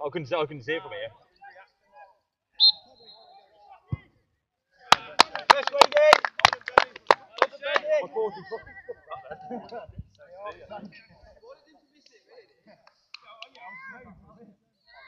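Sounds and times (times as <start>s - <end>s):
referee's whistle blast: 2.6s - 3.4s
person clapping: 4.9s - 7.8s
men laughing: 8.1s - 10.0s.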